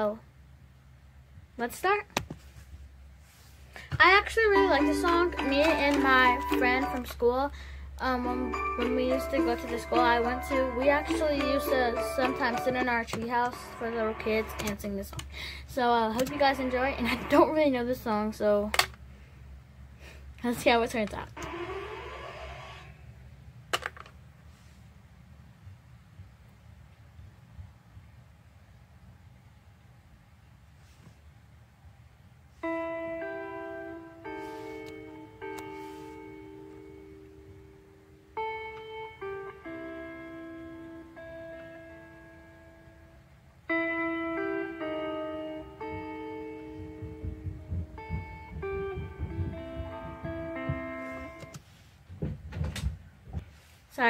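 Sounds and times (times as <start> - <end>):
low room rumble: 0.0 - 44.2, 44.8 - 54.0
plucked guitar music: 4.0 - 7.4, 8.0 - 15.0, 16.0 - 18.0, 32.6 - 51.6
low rumbling: 46.6 - 51.5
loud bumps: 46.7 - 51.5.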